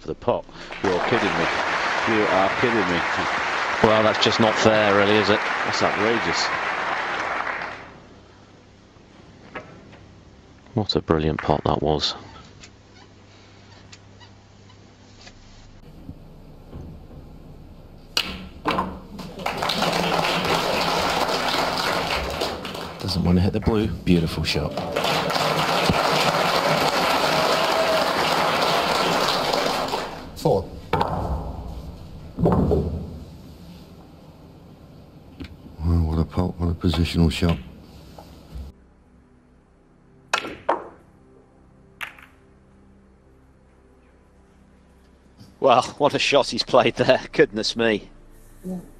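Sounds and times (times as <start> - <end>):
audience applauding: 0.6 - 8.0, 19.0 - 30.6
snooker balls clicking: 18.1 - 23.3, 42.0 - 42.4.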